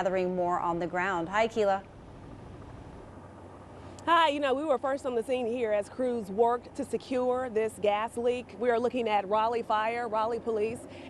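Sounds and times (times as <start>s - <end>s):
low hum: 0.0s - 11.0s
low street rumble: 0.0s - 11.0s.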